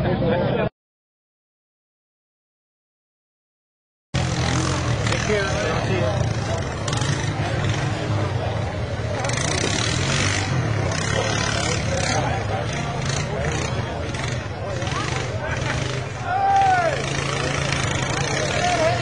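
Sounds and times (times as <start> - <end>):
quad engines revving: 4.2 - 19.0
spectators' voices: 4.2 - 19.0.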